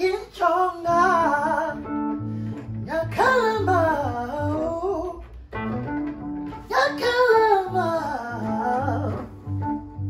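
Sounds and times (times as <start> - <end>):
high singing voice: 0.0 - 2.1, 2.8 - 5.3, 6.6 - 9.7
held electronic keyboard notes: 0.9 - 10.0.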